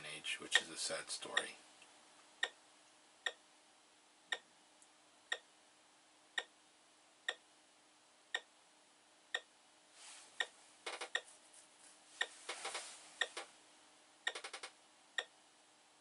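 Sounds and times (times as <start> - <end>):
faint steady hum: 0.0 - 16.0
quick clicks: 10.8 - 11.2, 14.3 - 14.8
brief rustle: 11.5 - 13.2.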